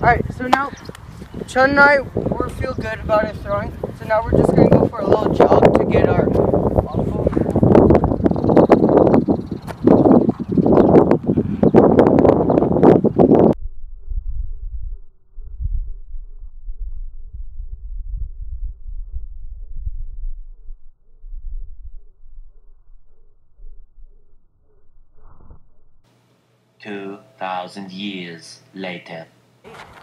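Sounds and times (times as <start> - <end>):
wind buffeting microphone: 0.0 - 25.6
faint low wind rumble: 0.0 - 26.1.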